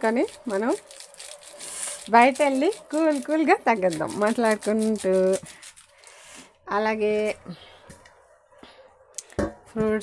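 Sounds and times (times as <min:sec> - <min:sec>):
woman talking: 0:00.0 - 0:00.8, 0:02.0 - 0:05.5, 0:06.7 - 0:07.6, 0:09.8 - 0:10.0.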